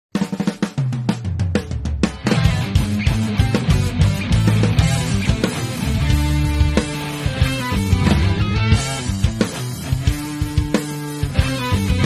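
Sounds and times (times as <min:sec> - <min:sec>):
rock drum fill on snare and kick: 0:00.1 - 0:12.0
low bass line: 0:02.4 - 0:10.1.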